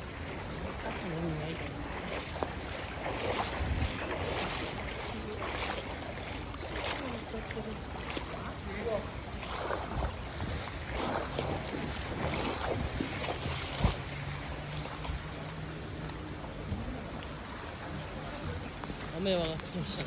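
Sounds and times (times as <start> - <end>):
wading through floodwater: 0.0 - 20.0.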